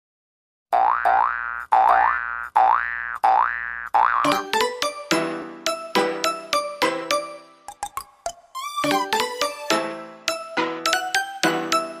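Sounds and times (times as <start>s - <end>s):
springy boing notes: 0.7s - 4.5s.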